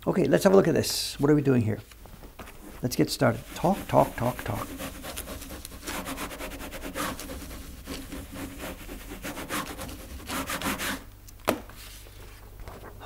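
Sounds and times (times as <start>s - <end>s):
rubbing strokes on paper: 2.5s - 11.0s.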